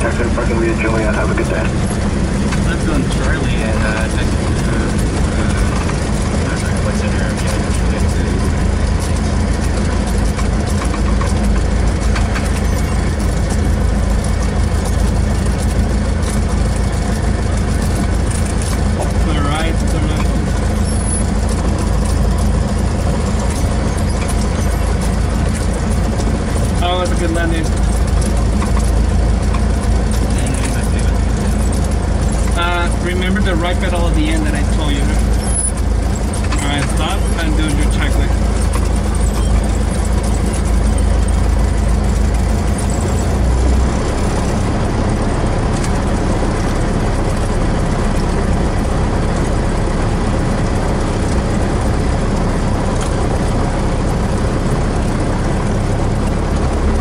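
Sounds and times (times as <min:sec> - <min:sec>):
faint voices: 0:00.0 - 0:01.8
propeller plane engine drone: 0:00.0 - 0:57.0.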